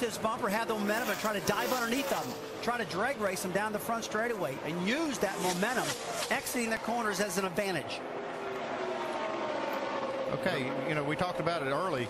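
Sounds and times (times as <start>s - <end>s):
race car engines droning: 0.0s - 12.0s.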